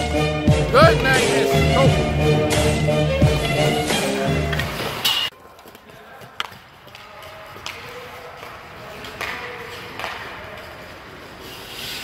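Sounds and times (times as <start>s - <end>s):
hockey stick hitting puck: 4.5s - 11.0s
skate blades scraping ice: 6.1s - 12.0s.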